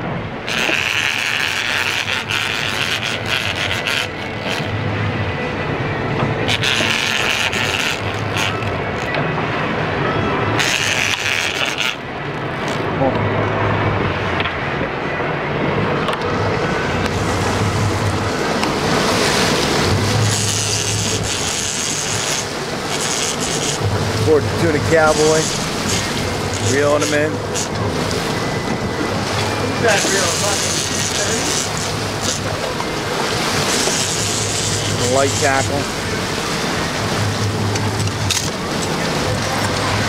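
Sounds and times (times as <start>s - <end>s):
sea noise: 0.0s - 40.0s
wind: 0.0s - 40.0s
fishing reel rasping: 0.4s - 4.8s, 6.5s - 9.1s, 10.6s - 12.0s, 20.1s - 23.9s, 24.8s - 27.8s, 30.0s - 32.5s, 33.5s - 35.8s.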